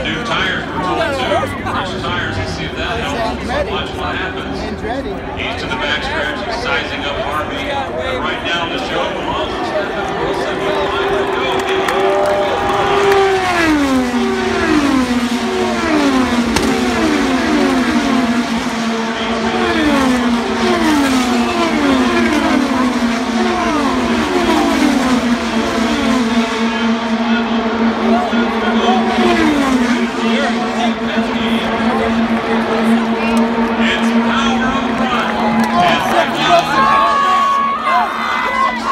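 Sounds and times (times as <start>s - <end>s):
race cars passing at speed: 0.0s - 38.9s.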